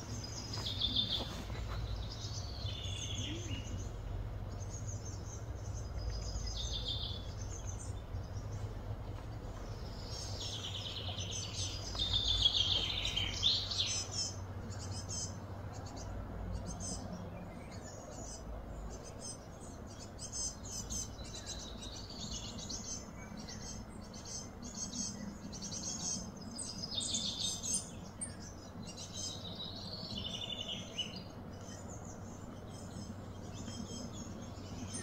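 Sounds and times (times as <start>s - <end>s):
steady low hum: 0.0s - 35.0s
wild birds chirping and trilling: 0.0s - 35.0s.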